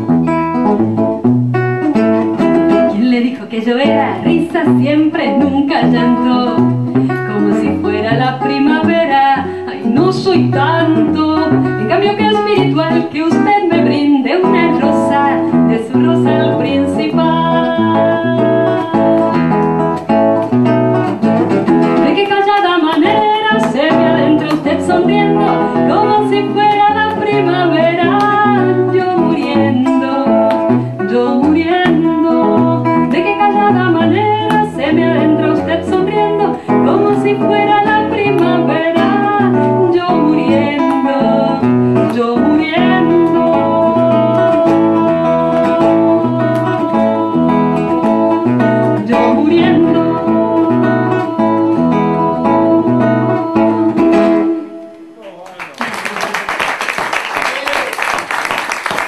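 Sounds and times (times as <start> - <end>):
classical guitar: 0.0 - 55.3
woman singing into microphone: 2.7 - 20.1, 21.8 - 55.2.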